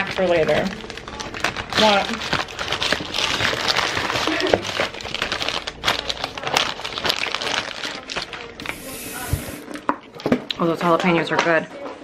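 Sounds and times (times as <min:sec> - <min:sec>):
snack bag crinkling: 0:00.0 - 0:09.8.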